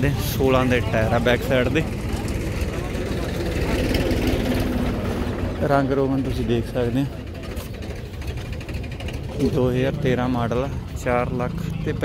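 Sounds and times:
low engine rumble: 0.0 - 12.0.

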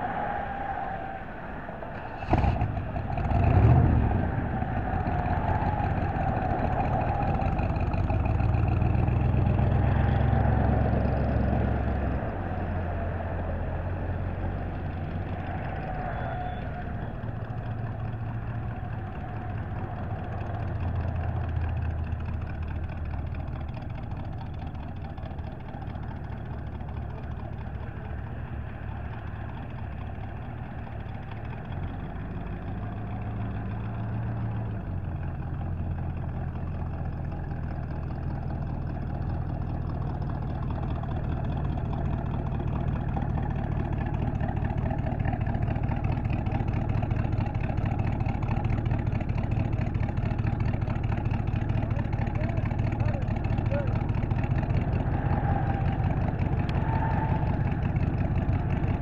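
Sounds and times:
car engine rumbling: 0.0 - 59.0
engine revving: 2.0 - 24.8, 40.5 - 59.0.

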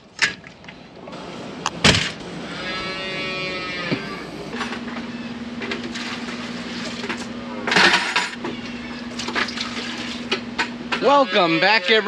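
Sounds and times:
steady low hum: 0.0 - 12.0
calf bawling: 2.4 - 5.4, 11.0 - 12.0.

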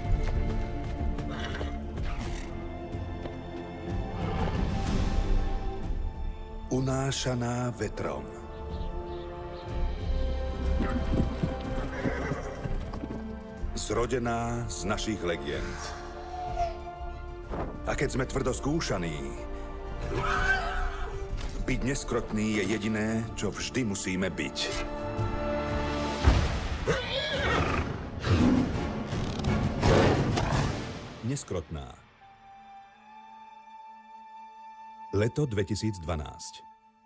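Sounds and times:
horse hooves galloping: 0.0 - 3.9, 10.0 - 14.0
music: 0.0 - 37.0
horse whinny: 1.3 - 2.5, 11.7 - 13.1, 26.9 - 28.3.

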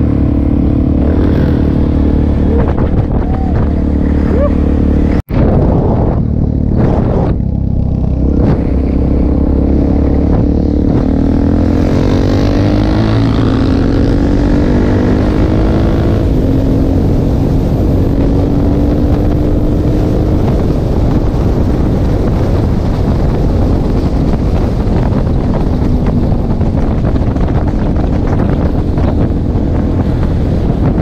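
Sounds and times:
motorcycle engine: 0.0 - 31.0
wind rushing over microphone: 0.0 - 31.0.

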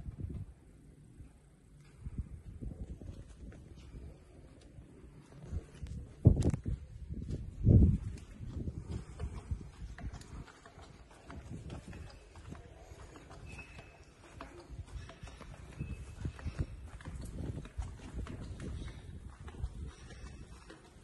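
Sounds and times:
footsteps on stone paving: 2.7 - 21.0.

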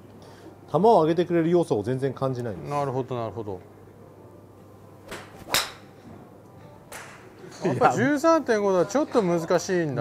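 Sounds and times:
golf club swing whoosh: 5.1 - 5.9
club striking golf ball: 5.1 - 6.0.

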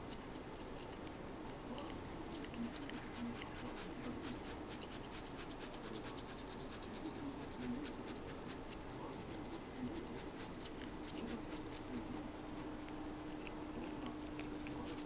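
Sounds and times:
toothbrush scrubbing teeth: 0.0 - 15.0.

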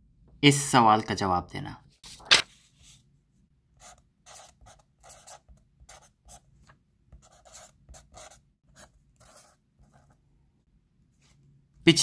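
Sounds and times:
marker writing on paper: 3.8 - 6.5, 7.1 - 10.2.

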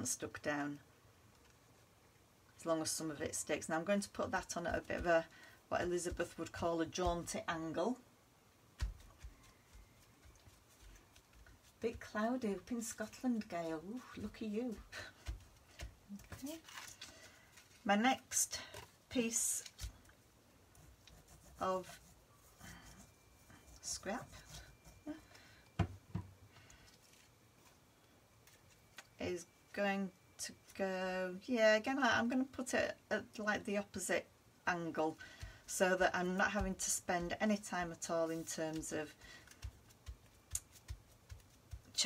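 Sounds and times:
soft bumps of hands pressing paper: 8.8 - 11.7, 38.7 - 42.0
faint handling noise: 26.6 - 29.2.

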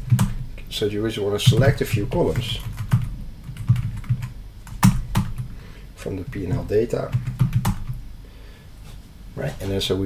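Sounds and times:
keyboard typing: 0.0 - 0.4, 1.4 - 5.5, 6.3 - 8.0.

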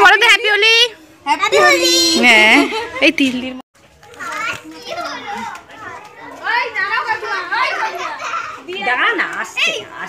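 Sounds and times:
children shouting and chattering: 0.0 - 3.1, 3.8 - 10.0.

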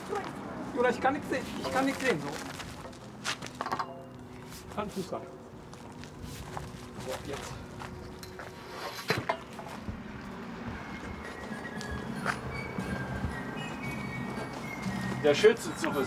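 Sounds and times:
metal flagpole knocks and clanks: 2.8 - 4.2, 9.0 - 9.7.

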